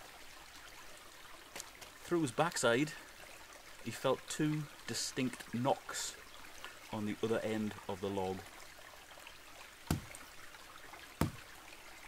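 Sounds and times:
stream trickling: 0.0s - 12.0s
hand knocking on log: 9.9s - 10.2s, 11.2s - 11.4s.

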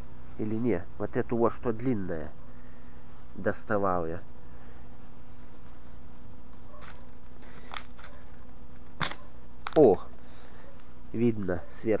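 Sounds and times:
low background hum: 0.0s - 12.0s
handling rustles and clicks: 6.5s - 11.0s.

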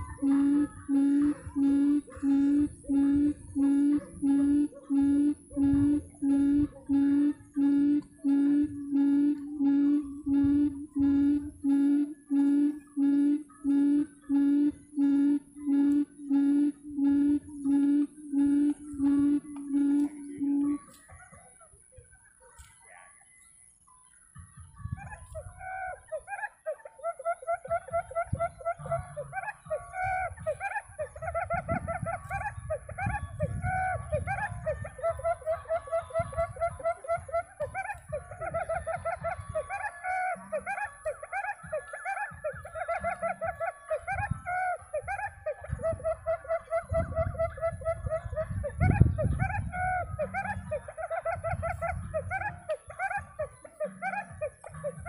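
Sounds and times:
quail calling: 0.0s - 23.0s, 23.6s - 55.0s.

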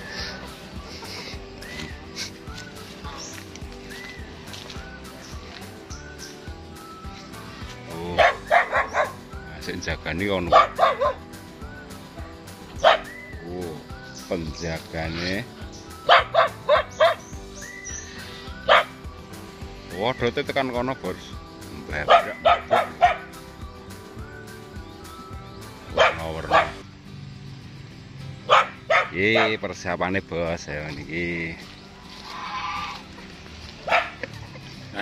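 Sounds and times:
dog barking: 8.2s - 9.2s, 10.5s - 11.2s, 12.8s - 13.1s, 16.0s - 17.2s, 18.6s - 19.0s, 22.0s - 23.3s, 25.9s - 26.8s, 28.5s - 29.6s, 33.8s - 34.2s.

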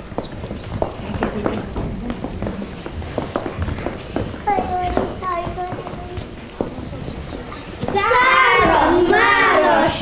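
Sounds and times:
children singing together: 7.9s - 10.0s.

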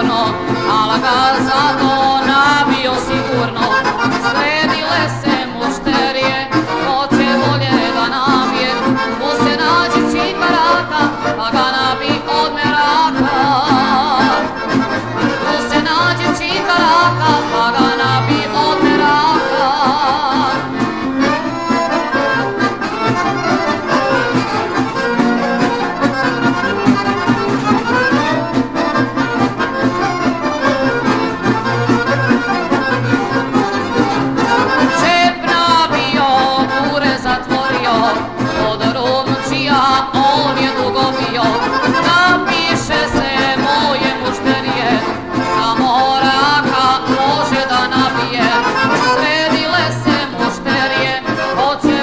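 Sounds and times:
accordion folk melody: 0.0s - 52.0s
pulsing bass line: 18.0s - 20.4s.

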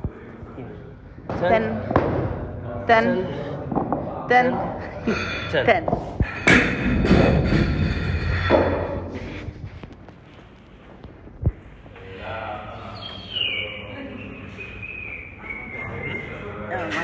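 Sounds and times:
voices in a gym: 0.0s - 17.0s.

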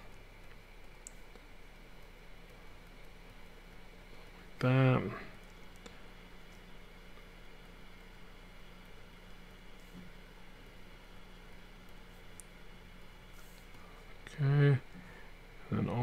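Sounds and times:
steady low hum: 0.0s - 16.0s
small faint ticks: 0.1s - 3.9s, 5.4s - 10.1s, 11.8s - 12.6s.

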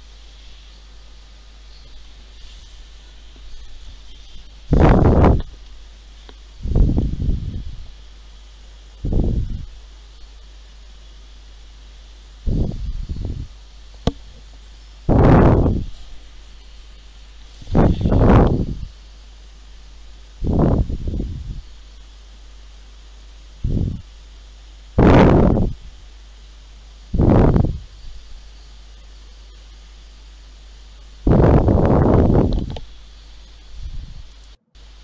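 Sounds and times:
rustling noise: 0.0s - 8.0s, 12.5s - 19.0s
faint low hum: 0.0s - 35.0s.

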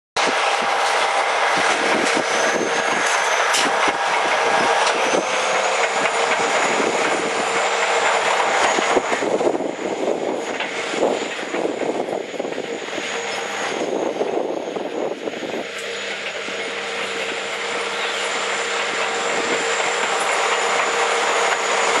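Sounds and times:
bulldozer diesel engine under load: 0.2s - 22.0s
high steady whine: 0.2s - 22.0s
steel tracks clattering: 0.2s - 22.0s.

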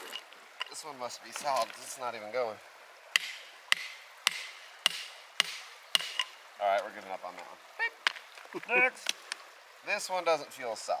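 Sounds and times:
hammer striking a chisel: 3.2s - 6.3s.

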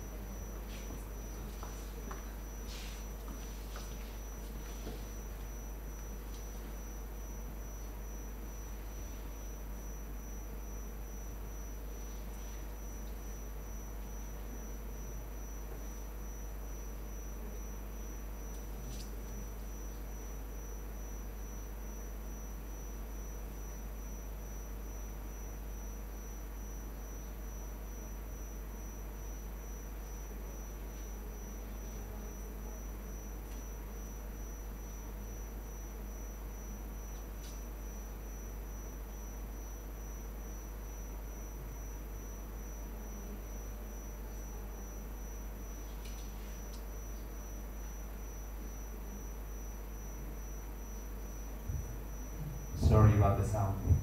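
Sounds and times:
high-pitched whine: 51.7s - 54.0s
low hum: 51.7s - 54.0s.

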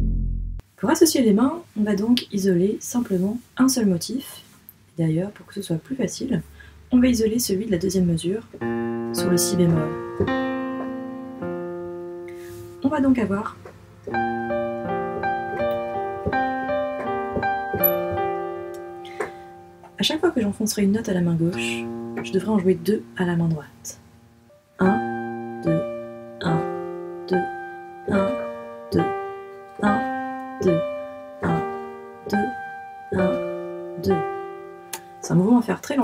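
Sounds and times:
low piano notes: 7.0s - 36.0s.

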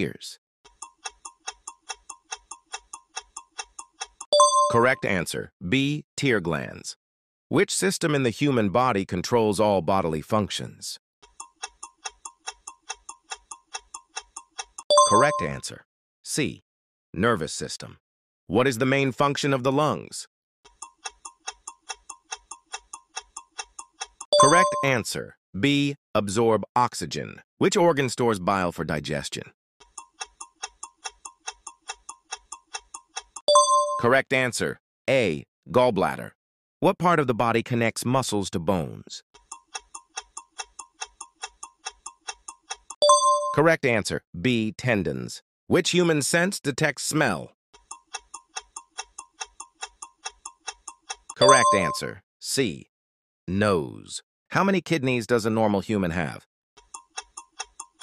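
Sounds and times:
fast clock ticking: 0.7s - 4.8s, 11.2s - 15.4s, 20.7s - 25.0s, 29.8s - 34.0s, 39.4s - 43.0s, 47.8s - 52.0s, 56.8s - 58.0s.

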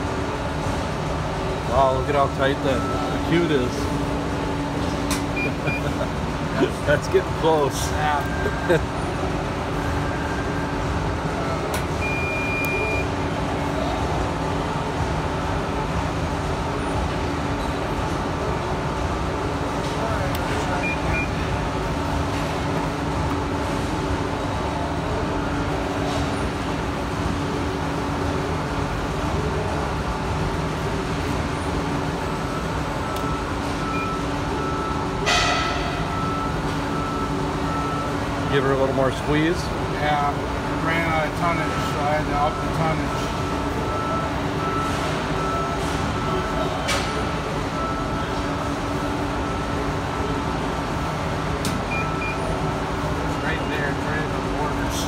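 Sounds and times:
sharp metal clunk: 35.2s - 36.0s.

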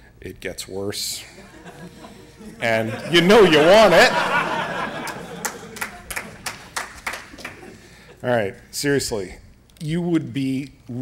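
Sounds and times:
audience handclaps: 5.0s - 7.8s.

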